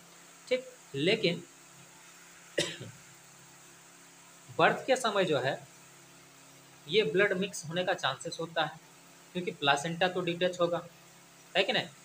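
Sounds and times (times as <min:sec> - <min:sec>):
short cough: 0:02.6 - 0:03.0.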